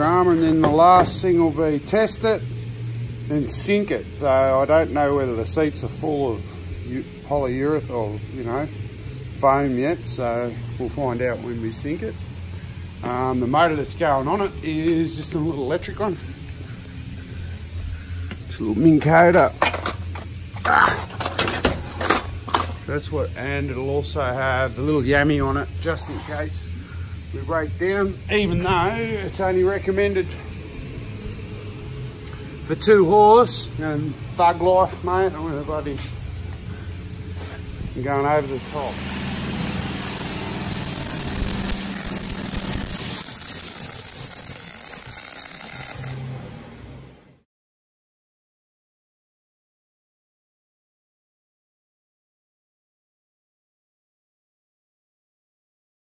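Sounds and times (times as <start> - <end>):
welder arc hissing crackle: 0.0 - 46.5
steady low hum: 0.0 - 47.4.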